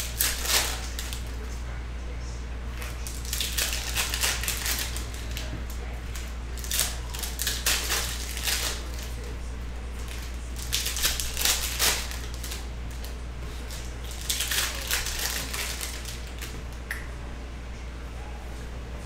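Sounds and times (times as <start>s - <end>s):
cards being handled: 0.0s - 1.4s, 2.7s - 9.4s, 10.0s - 16.8s
foil wrappers crinkling: 0.0s - 1.6s, 2.7s - 16.8s
steady low hum: 0.0s - 19.0s.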